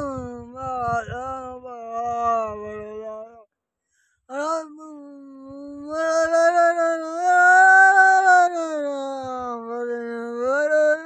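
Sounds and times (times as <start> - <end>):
man chanting a prayer: 0.0 - 3.4, 4.3 - 11.0.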